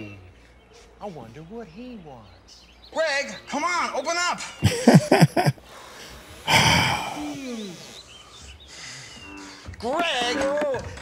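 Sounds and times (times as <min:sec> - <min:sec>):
loud rushing breath: 0:05.6 - 0:07.6
man sighing: 0:06.5 - 0:07.5.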